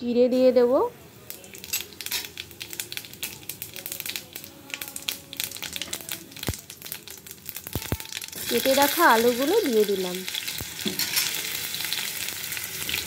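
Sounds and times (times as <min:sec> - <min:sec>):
seeds crackling in hot oil: 0:01.2 - 0:13.0.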